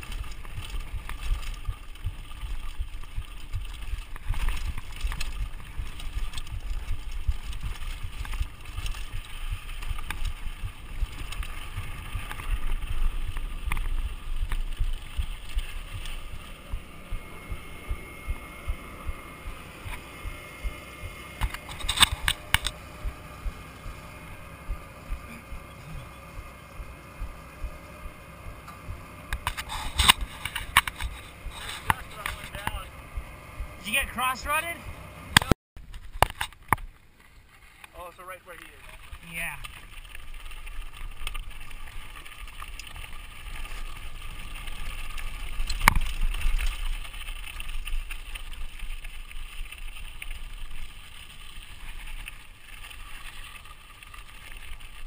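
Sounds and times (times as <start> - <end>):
bike rattling over dirt trail: 0.0 - 34.8, 35.4 - 55.0.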